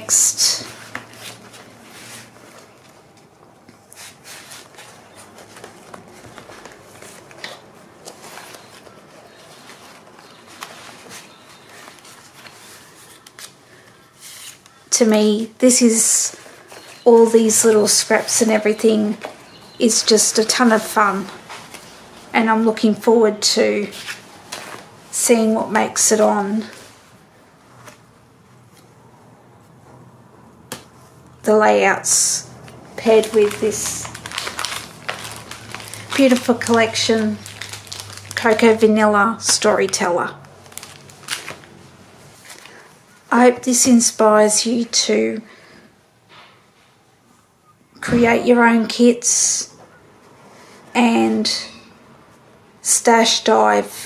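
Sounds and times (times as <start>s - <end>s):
paper rustling: 0.2s - 15.2s, 16.3s - 22.3s, 23.8s - 25.0s, 32.6s - 43.0s.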